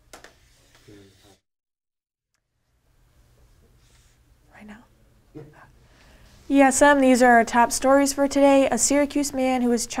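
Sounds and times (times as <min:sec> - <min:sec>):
quiet whisper: 0:03.6 - 0:05.8.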